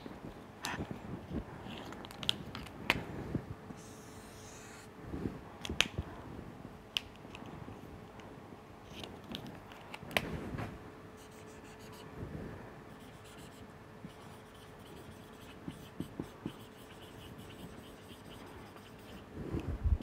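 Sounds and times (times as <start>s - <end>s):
marker scratching on whiteboard: 3.8s - 4.9s, 12.9s - 19.3s
marker ticks: 14.1s - 19.2s.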